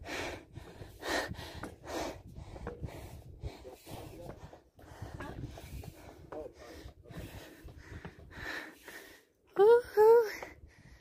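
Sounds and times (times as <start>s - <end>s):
person breathing hard: 0.0s - 9.4s, 10.3s - 11.0s.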